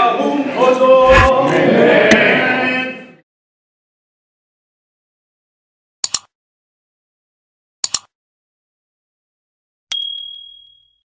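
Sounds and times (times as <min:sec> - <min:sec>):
sharp click: 0:06.0 - 0:06.3, 0:07.8 - 0:08.1
bright high ding: 0:09.9 - 0:11.0.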